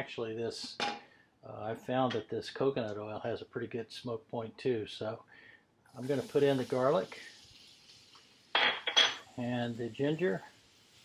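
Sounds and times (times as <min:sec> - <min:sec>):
oil hissing in pan: 0:05.9 - 0:11.0.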